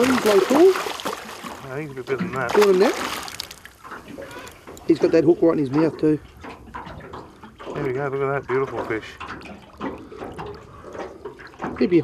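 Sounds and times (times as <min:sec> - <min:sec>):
water trickling and splashing: 0:00.0 - 0:12.0.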